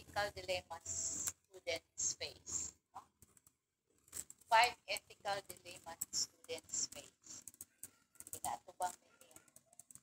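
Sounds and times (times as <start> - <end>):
computer keyboard typing: 2.3 - 10.0.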